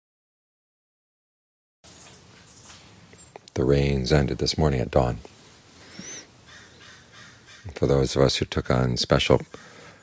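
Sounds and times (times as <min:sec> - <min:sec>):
bird chirping: 0:01.8 - 0:03.5, 0:05.8 - 0:07.9.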